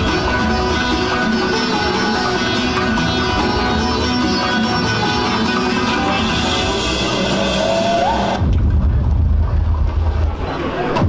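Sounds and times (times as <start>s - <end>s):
music with rising tone: 0.0s - 9.5s
deep low rumble: 8.3s - 10.5s.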